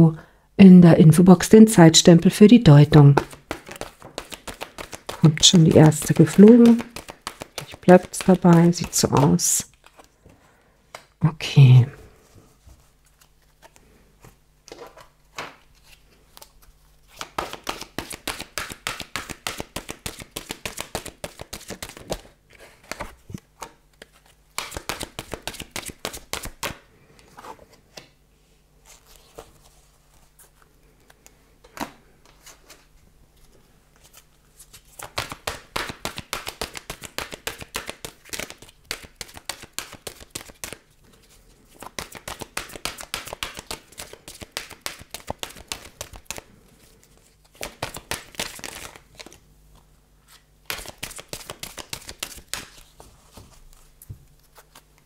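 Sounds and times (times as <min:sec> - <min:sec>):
cards being shuffled by hand: 0:02.2 - 0:10.3, 0:12.6 - 0:28.2, 0:28.8 - 0:55.0.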